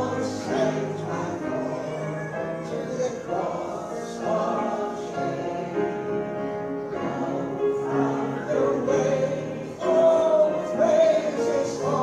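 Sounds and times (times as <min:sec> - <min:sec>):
group singing a hymn: 0:00.0 - 0:12.0
piano accompaniment: 0:00.0 - 0:12.0.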